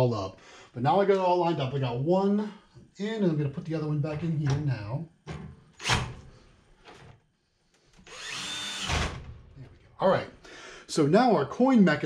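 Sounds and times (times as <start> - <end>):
cordless drill driving screw: 8.0 - 9.2.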